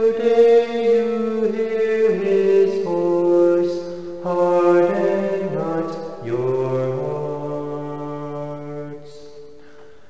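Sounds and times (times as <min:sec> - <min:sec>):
man singing a cappella chant: 0:00.0 - 0:09.6.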